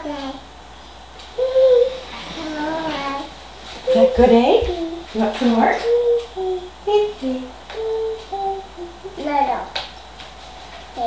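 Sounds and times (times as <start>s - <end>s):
toddler sing-song vocal: 1.4s - 5.1s, 5.8s - 9.8s.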